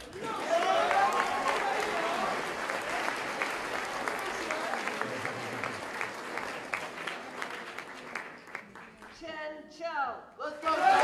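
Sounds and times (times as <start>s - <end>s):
audience applauding: 0.0s - 9.2s, 10.6s - 11.0s.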